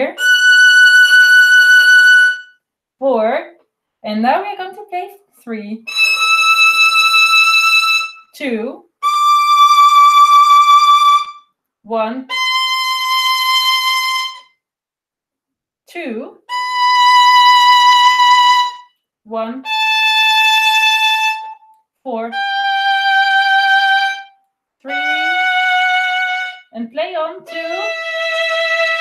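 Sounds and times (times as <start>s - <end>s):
violin bowed notes: 0.0s - 2.6s, 5.9s - 8.4s, 9.0s - 11.5s, 12.2s - 14.5s, 16.5s - 18.9s, 19.6s - 29.0s.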